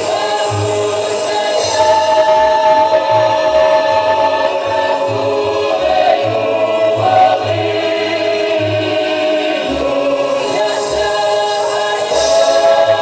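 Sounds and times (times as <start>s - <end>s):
mixed choir singing folk song: 0.0s - 13.0s.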